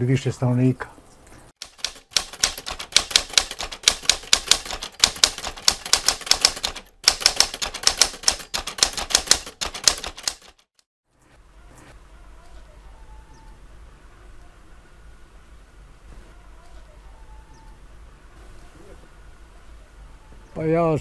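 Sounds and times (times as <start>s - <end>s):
typewriter keys clacking: 1.6s - 10.8s.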